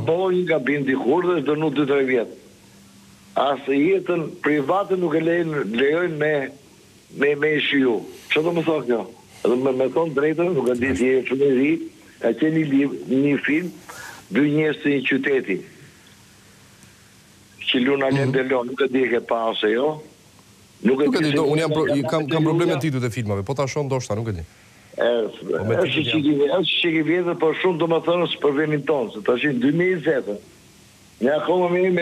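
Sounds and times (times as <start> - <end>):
person talking over phone line: 8.3 - 11.4, 17.7 - 18.7, 20.8 - 26.6.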